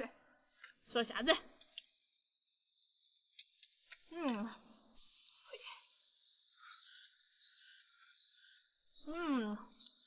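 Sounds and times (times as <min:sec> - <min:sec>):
faint insect chirring: 0:00.8 - 0:10.0.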